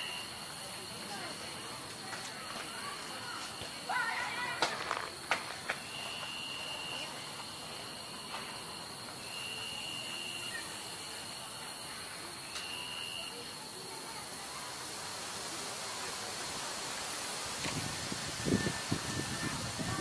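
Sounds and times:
lower insect trill: 0.0 - 4.0, 5.8 - 20.0
high thin insect trill: 0.0 - 20.0
steady hiss: 0.0 - 20.0.

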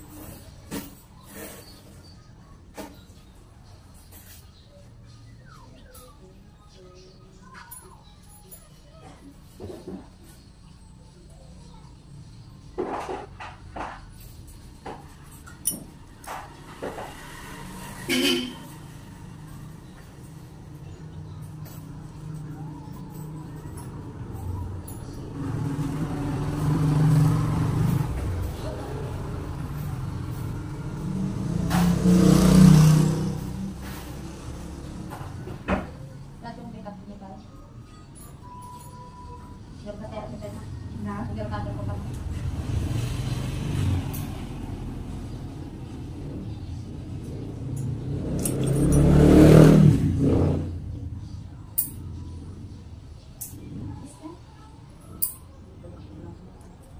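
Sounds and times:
motor vehicle passing by: 15.2 - 37.9, 39.5 - 55.2.

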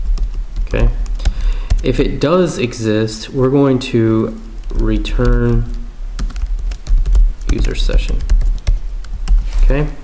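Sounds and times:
computer keyboard typing: 0.0 - 2.0, 4.4 - 9.4.

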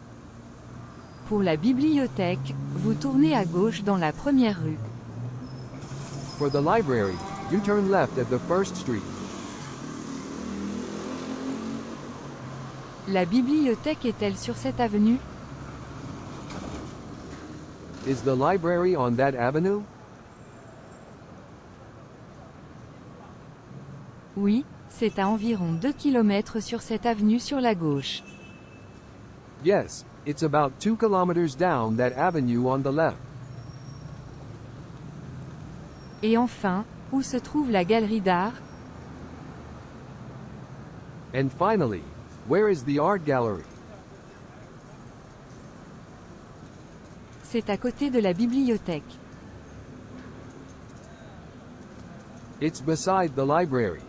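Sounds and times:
car traffic hum: 0.0 - 54.0.

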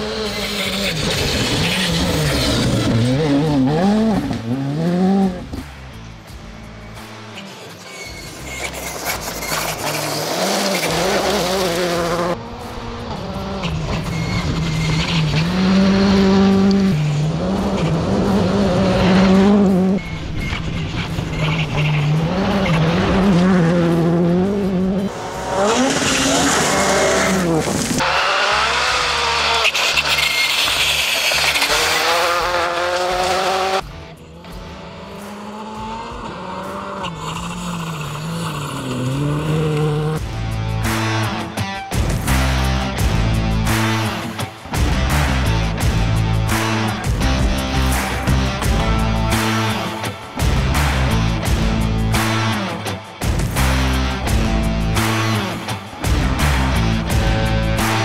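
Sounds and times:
rally car engine at full throttle: 0.0 - 58.0.

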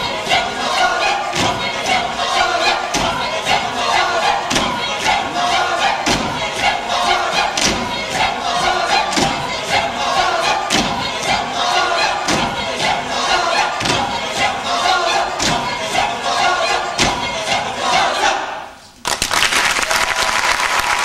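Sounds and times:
choir singing loudly: 0.0 - 18.8
regular thump: 1.3 - 16.1.

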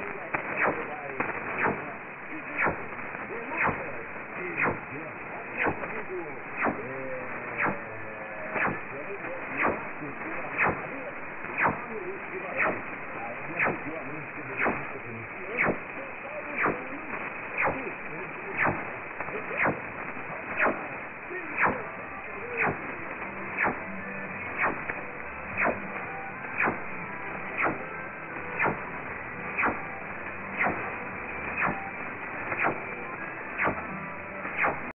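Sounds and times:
radio static hiss: 0.0 - 34.9
weak radio broadcast: 0.0 - 34.9.

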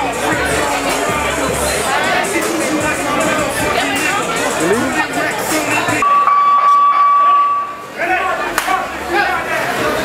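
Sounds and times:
music: 0.0 - 6.1
crowd noise: 0.0 - 10.0
steady electronic beep: 6.0 - 7.8.

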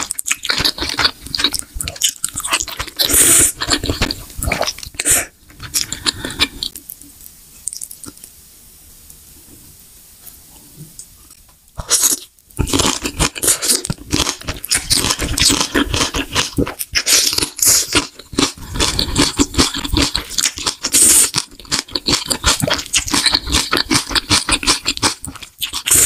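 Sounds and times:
wet chewing and smacking: 0.0 - 8.2, 11.8 - 26.0.

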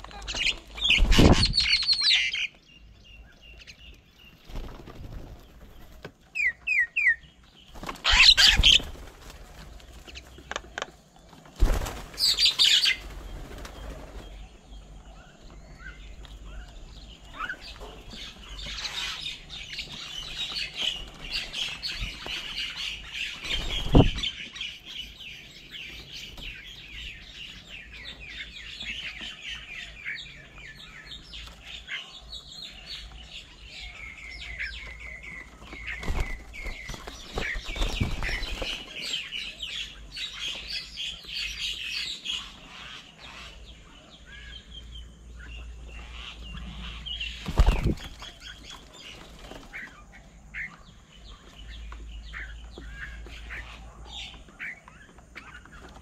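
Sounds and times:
birds' wings flapping: 0.0 - 1.8, 4.3 - 6.2, 7.7 - 14.4, 19.9 - 24.3, 35.2 - 39.3, 47.3 - 50.1
small birds chirping: 0.0 - 56.0.

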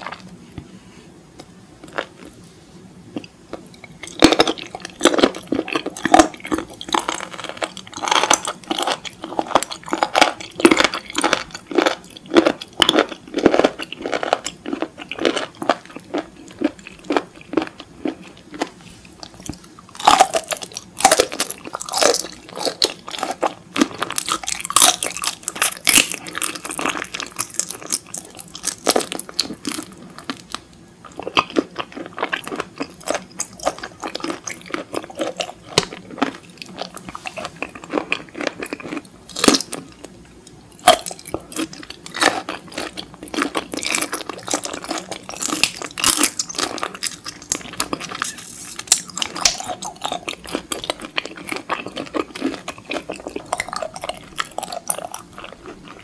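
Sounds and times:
chewing raw seafood: 3.1 - 56.0.

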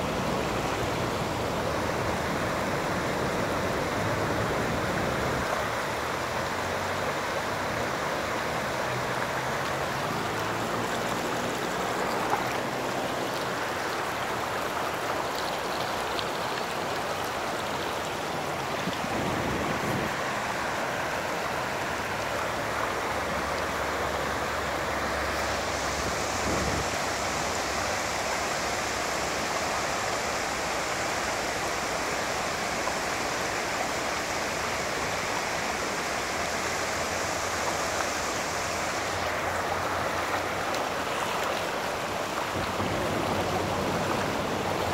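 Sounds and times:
floodwater rushing: 0.0 - 44.9.

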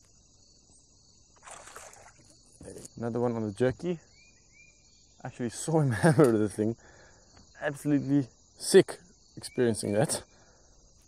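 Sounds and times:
insects chirring: 0.0 - 11.0
short water splash: 1.4 - 2.3.

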